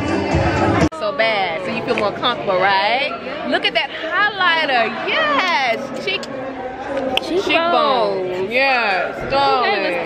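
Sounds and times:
women exclaiming and chattering: 0.9s - 10.0s.

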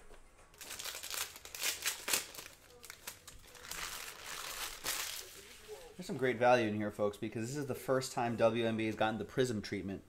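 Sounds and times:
foil wrappers crinkling: 0.5s - 5.8s
foil rustle: 0.6s - 5.9s.

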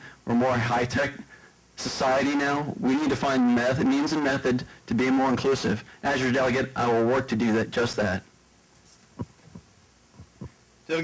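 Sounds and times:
low room hum: 0.0s - 11.0s
microphone handling thumps: 8.8s - 10.6s.

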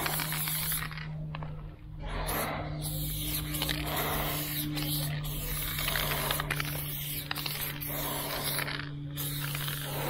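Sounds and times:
spray paint can hissing: 0.0s - 1.1s, 2.2s - 10.0s
low steady hum: 0.0s - 10.0s.

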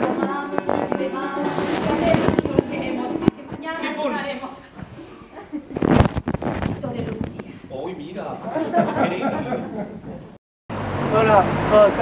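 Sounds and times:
strummed ukulele: 0.0s - 3.7s.

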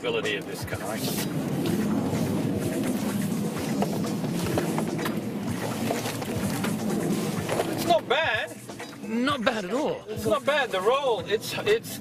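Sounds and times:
background music: 0.0s - 12.0s
road and tyre noise: 0.0s - 12.0s.

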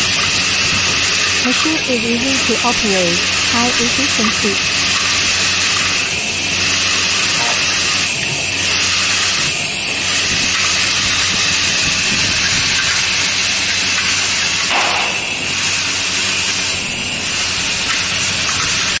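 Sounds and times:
screws rattling along tracks: 0.0s - 19.0s
vibratory feeder hissing and humming: 0.0s - 19.0s.

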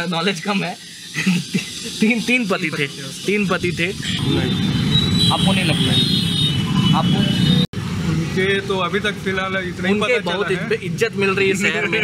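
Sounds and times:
high steady whine: 0.0s - 5.4s
men talking: 0.0s - 6.2s, 6.8s - 12.0s.

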